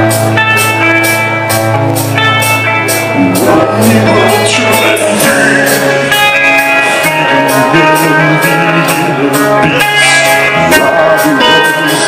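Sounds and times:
electric guitars: 0:00.0 - 0:12.0
person singing through pa: 0:03.1 - 0:12.0.

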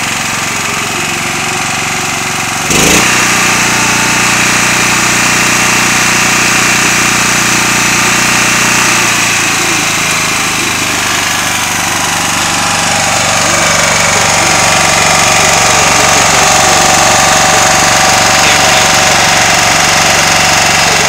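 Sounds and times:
small engine running: 0:00.0 - 0:21.0.

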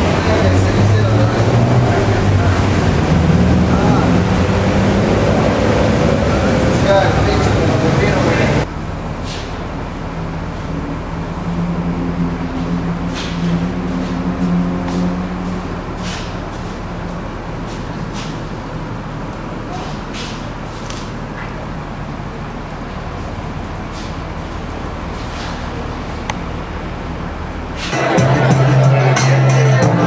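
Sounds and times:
steady mechanical noise: 0:00.0 - 0:30.0.

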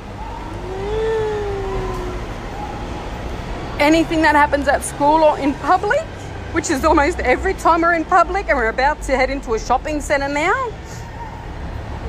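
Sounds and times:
car rumble: 0:00.0 - 0:06.2
boy wailing: 0:00.2 - 0:02.4.

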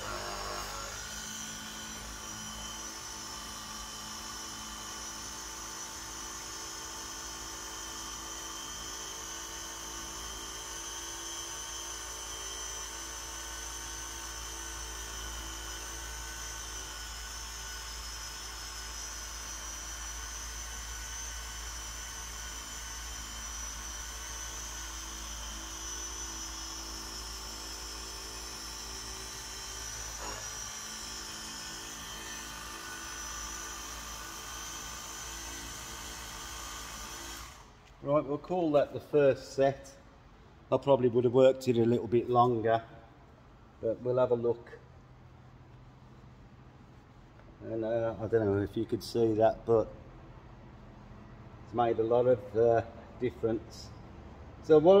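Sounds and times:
orbital polisher whining: 0:00.0 - 0:38.0.

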